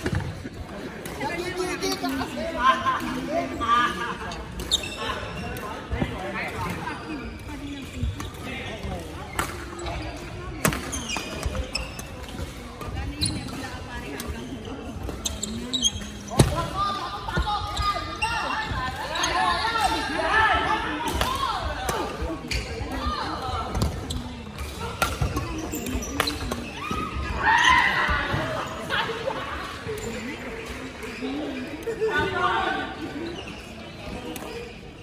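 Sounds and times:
voices in sports hall: 0:00.0 - 0:35.0.

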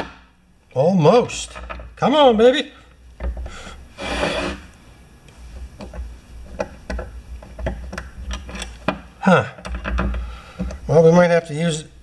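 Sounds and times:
metal tool scraping: 0:03.8 - 0:04.7.

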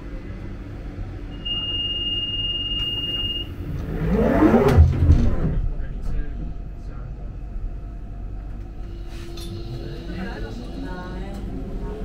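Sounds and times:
train rumble: 0:00.0 - 0:12.0
high warning beep: 0:01.3 - 0:03.5
train doors sliding shut: 0:02.7 - 0:05.6.

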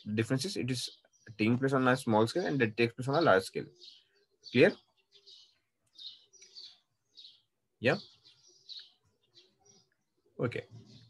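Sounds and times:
birds chirping: 0:00.0 - 0:11.0.

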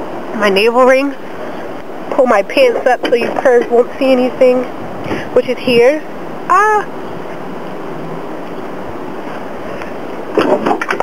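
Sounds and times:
outdoor ambient hiss: 0:00.0 - 0:11.0.

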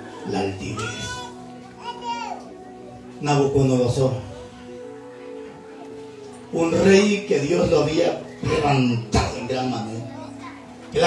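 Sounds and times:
soft keyboard chord: 0:00.0 - 0:11.0
child calling out: 0:00.8 - 0:02.6.

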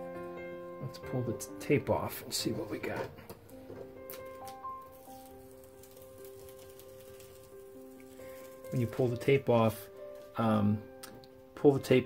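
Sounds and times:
soft music of held notes: 0:00.0 - 0:12.0
masking tape peeling off paper: 0:03.4 - 0:09.4.

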